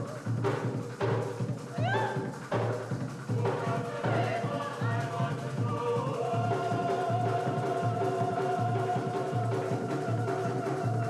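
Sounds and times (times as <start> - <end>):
high vocal cry: 1.7 - 2.3.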